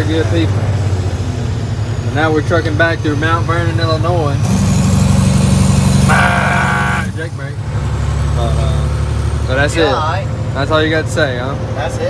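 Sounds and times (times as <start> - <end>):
diesel truck engine running: 0.0 - 12.0.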